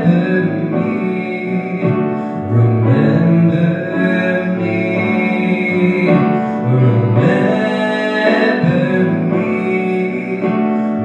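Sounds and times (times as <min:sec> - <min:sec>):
grand piano playing chords: 0:00.0 - 0:11.0.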